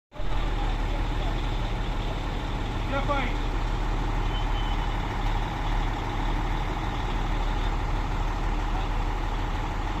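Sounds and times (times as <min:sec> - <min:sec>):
truck engine rumbling: 0:00.1 - 0:10.0
short high beep: 0:04.3 - 0:05.0.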